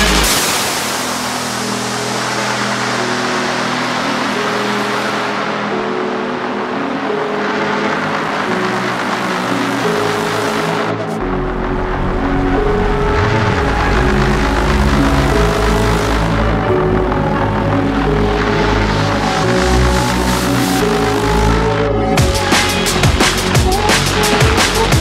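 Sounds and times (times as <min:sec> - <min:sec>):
deep bass: 0:00.0 - 0:03.1, 0:07.4 - 0:25.0
hissing noise wash: 0:00.0 - 0:25.0
synth pad chords: 0:00.0 - 0:25.0.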